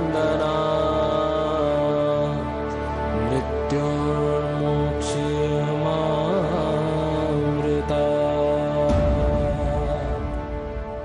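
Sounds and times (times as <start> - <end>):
person chanting sung notes: 0.0 - 11.0
steady drone: 0.0 - 11.0.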